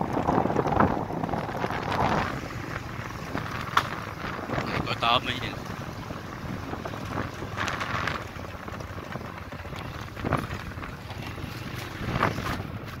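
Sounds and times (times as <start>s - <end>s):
steady low rumble: 0.0s - 13.0s
wind buffeting microphone: 0.0s - 13.0s.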